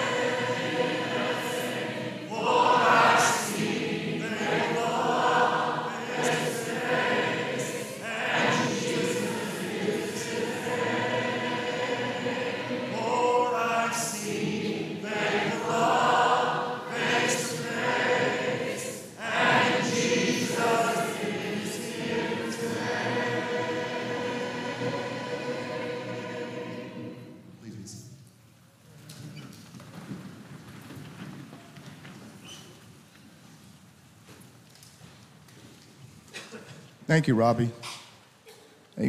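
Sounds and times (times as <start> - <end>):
congregation singing a hymn: 0.0 - 27.7.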